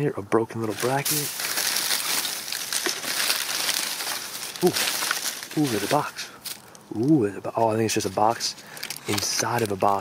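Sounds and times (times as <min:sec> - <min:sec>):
plastic bag crinkling: 0:00.7 - 0:06.8, 0:08.5 - 0:10.0.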